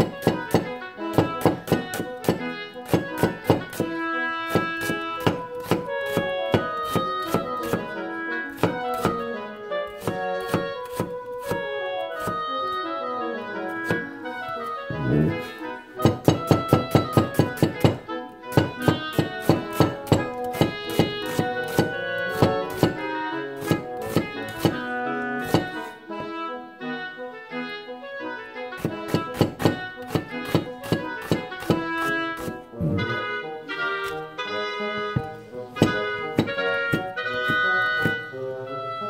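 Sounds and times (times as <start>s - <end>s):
knife slicing onion on cutting board: 0.0s - 3.9s, 4.5s - 7.9s, 8.5s - 9.3s, 9.9s - 12.5s, 13.8s - 14.1s, 16.0s - 25.9s, 28.8s - 33.2s, 34.0s - 34.3s, 35.2s - 38.3s
keyboard music: 11.4s - 24.1s, 32.2s - 39.0s.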